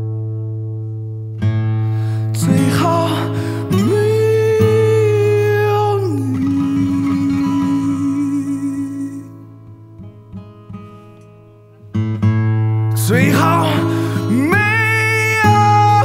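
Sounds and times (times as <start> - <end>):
guitar backing: 0.0 - 16.0.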